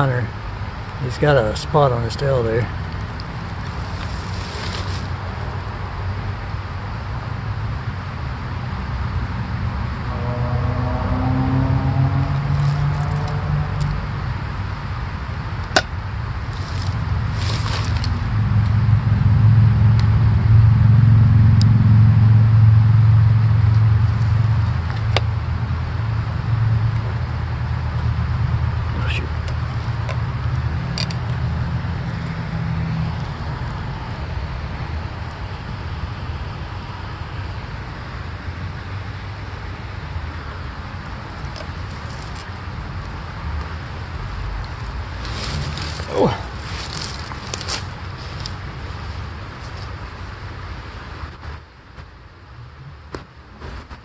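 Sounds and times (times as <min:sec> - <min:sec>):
road traffic rumble: 0:00.0 - 0:54.0
vehicle passing: 0:08.5 - 0:15.6, 0:16.3 - 0:37.6, 0:38.8 - 0:51.0.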